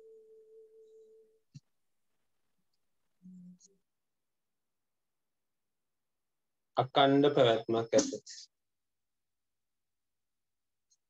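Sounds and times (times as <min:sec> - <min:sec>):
faint steady tone: 0:00.0 - 0:01.5.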